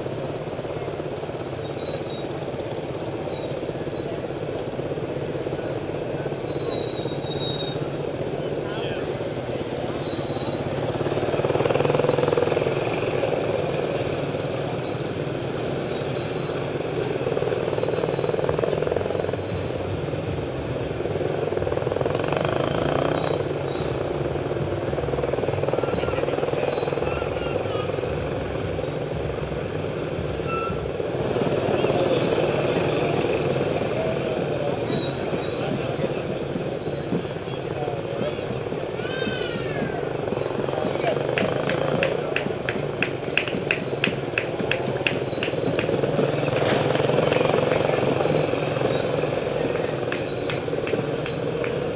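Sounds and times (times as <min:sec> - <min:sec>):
motorcycle engines droning: 0:00.0 - 0:51.9
voices: 0:00.0 - 0:51.9.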